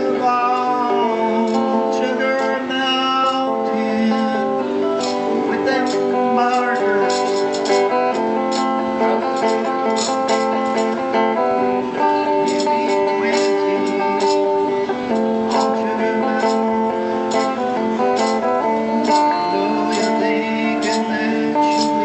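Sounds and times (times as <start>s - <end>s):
guitar strumming chords: 0.0s - 22.0s.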